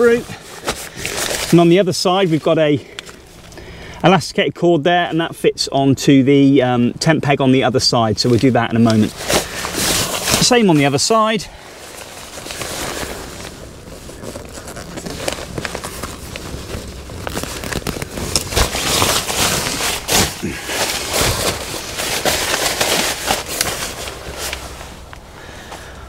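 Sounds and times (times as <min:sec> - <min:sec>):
synthetic fabric rustling and crinkling: 0:00.0 - 0:03.5, 0:08.0 - 0:25.9.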